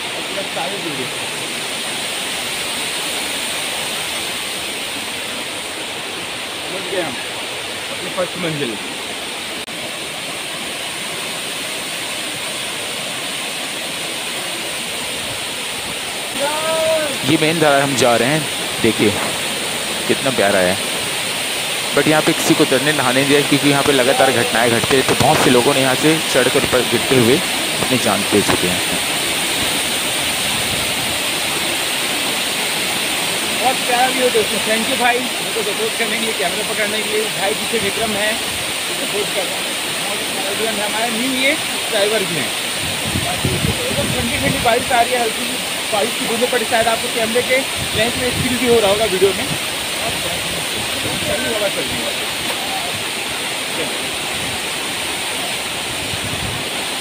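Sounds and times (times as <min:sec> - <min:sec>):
waterfall rushing: 0:00.0 - 0:57.0.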